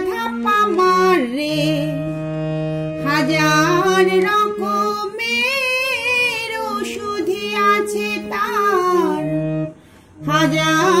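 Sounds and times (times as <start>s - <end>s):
woman singing: 0.0s - 2.2s, 3.0s - 9.5s, 10.2s - 11.0s
harmonium melody: 0.0s - 11.0s.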